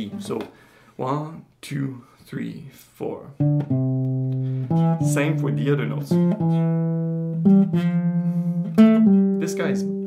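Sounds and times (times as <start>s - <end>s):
classical guitar single notes: 3.4s - 10.0s
guitar string buzzing: 3.4s - 10.0s.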